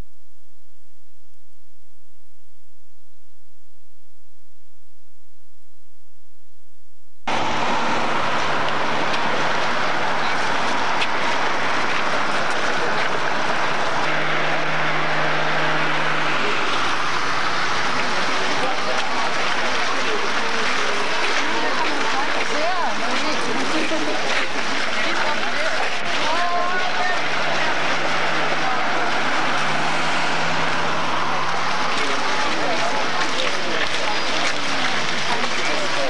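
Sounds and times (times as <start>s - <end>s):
noisy outdoor background: 0.0s - 36.0s
low engine hum: 7.3s - 36.0s.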